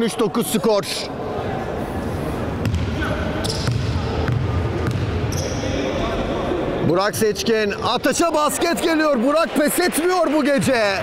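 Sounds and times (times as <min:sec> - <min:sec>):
basketball bouncing on hardwood floor: 0:02.6 - 0:02.9, 0:03.6 - 0:05.1.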